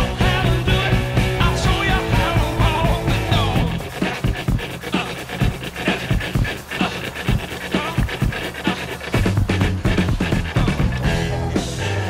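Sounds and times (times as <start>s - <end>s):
dog panting: 2.6s - 11.2s.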